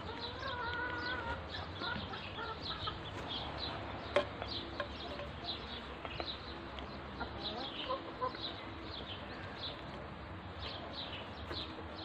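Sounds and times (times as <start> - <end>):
bills pecking at feed dish: 0.0 - 12.0
ducklings peeping: 0.0 - 12.0.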